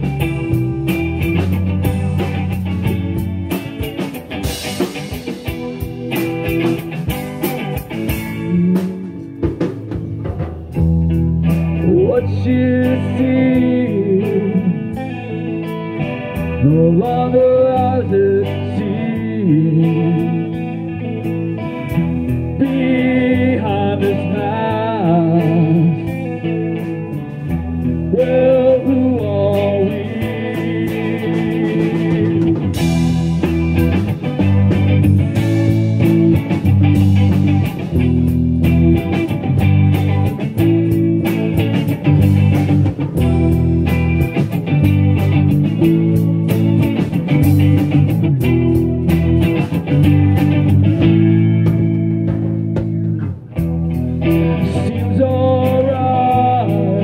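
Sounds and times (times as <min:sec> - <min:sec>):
electric guitar bending notes: 0:00.0 - 0:57.0
live rock band playing: 0:00.0 - 0:57.0.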